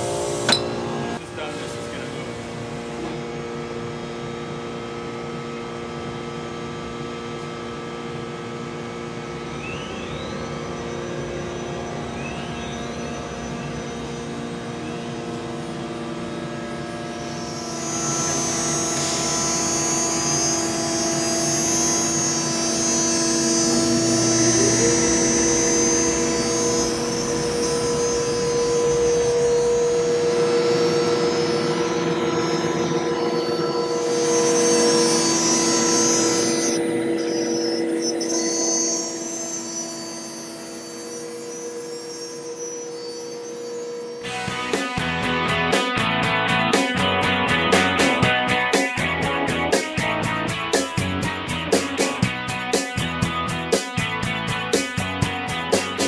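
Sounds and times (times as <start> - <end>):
router spindle whine: 0.0 - 56.0
tone gliding up in pitch: 9.0 - 52.2
guitar music: 17.3 - 37.2, 44.2 - 56.0.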